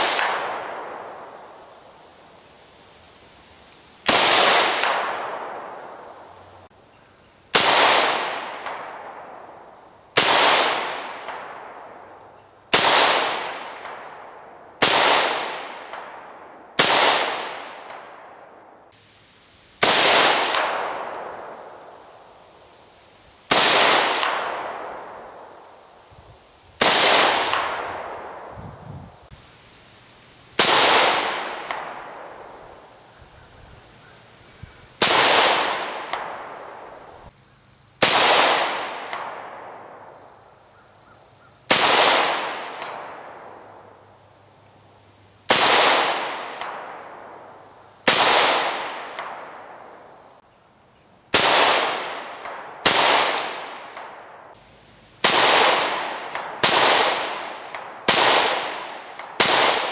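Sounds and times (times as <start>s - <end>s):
rifle shots echoing: 0.0s - 1.5s, 4.1s - 6.0s, 7.5s - 18.6s, 19.8s - 22.3s, 23.5s - 26.0s, 26.8s - 28.6s, 30.6s - 33.1s, 35.0s - 37.1s, 38.0s - 40.0s, 41.7s - 43.7s, 45.5s - 47.5s, 48.1s - 50.1s, 51.3s - 54.4s, 55.2s - 59.9s.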